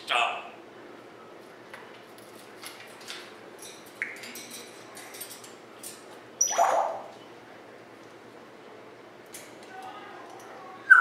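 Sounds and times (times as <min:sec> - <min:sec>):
parrot squawk: 0:06.4 - 0:07.1.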